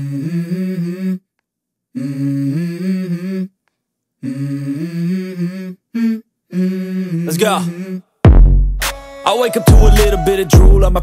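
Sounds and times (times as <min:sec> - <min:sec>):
man humming into a microphone: 0:04.2 - 0:08.0, 0:09.5 - 0:11.0.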